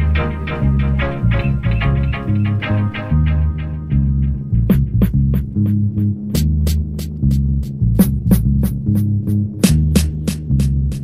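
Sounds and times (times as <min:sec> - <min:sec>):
deep bass line: 0:00.0 - 0:11.0.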